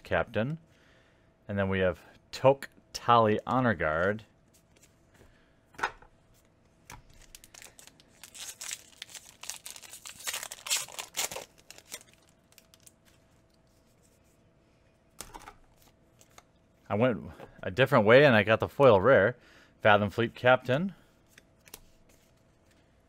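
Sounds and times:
foil wrapper tearing and crinkling: 7.1s - 13.0s.

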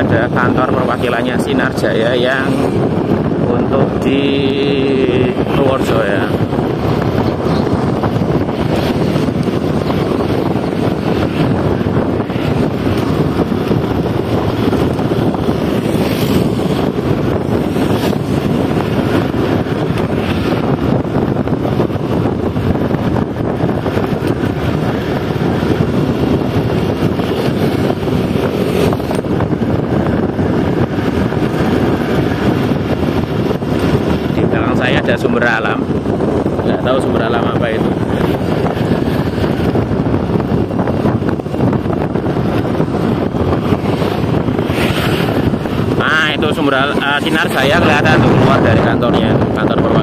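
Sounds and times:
vehicle road and engine noise: 0.0s - 50.0s
wind rush on microphone: 0.0s - 50.0s.

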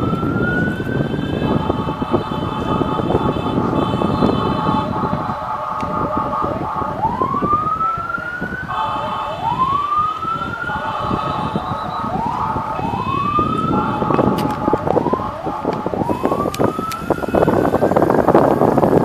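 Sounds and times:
city traffic noise: 0.0s - 19.0s
fire engine sirens wailing: 0.0s - 19.0s.

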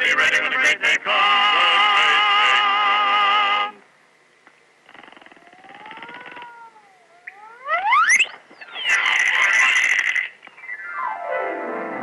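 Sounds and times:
whistle sliding upward: 7.2s - 9.0s.

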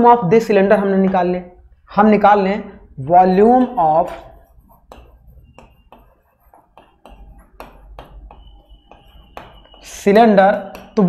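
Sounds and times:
marker writing on whiteboard: 1.0s - 11.0s.

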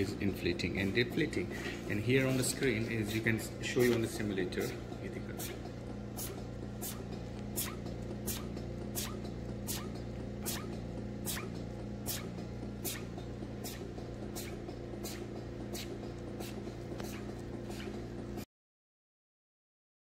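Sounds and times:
steady machine hum: 0.0s - 18.5s
pump hissing clicks: 3.8s - 18.0s.

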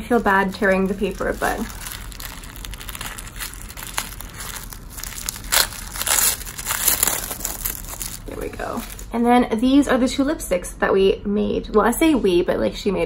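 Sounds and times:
paper tearing and crumpling: 0.0s - 9.2s.

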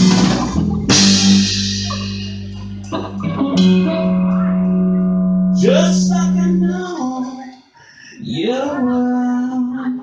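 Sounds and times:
singer wailing a long note: 1.0s - 7.6s.

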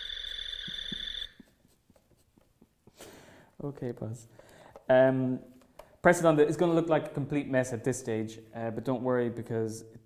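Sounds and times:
high electronic toy tone: 0.0s - 1.4s.

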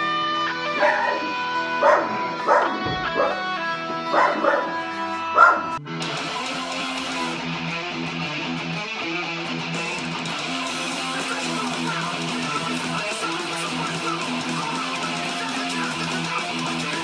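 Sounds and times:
electric guitar notes ringing: 0.0s - 15.2s
distorted electric guitar playing: 0.0s - 17.0s
dog barking: 0.6s - 5.8s.

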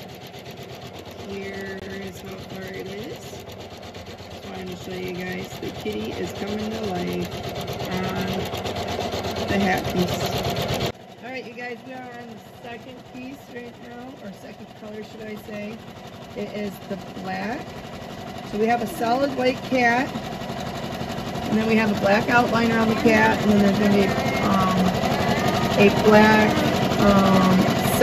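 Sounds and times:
embroidery machine needle clatter: 0.0s - 28.0s.

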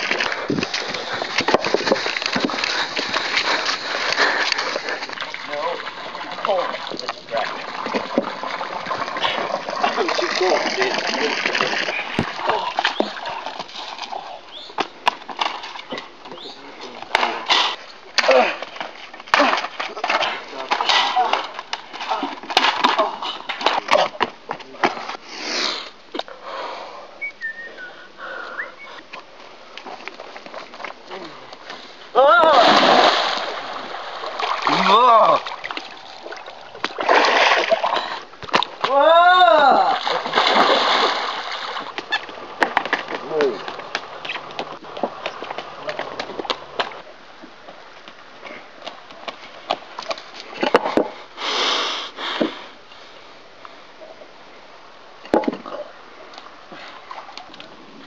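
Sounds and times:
water splashing in pool: 0.0s - 16.1s, 32.2s - 47.0s
people yelling: 32.2s - 32.8s, 34.7s - 35.4s, 38.8s - 40.1s.

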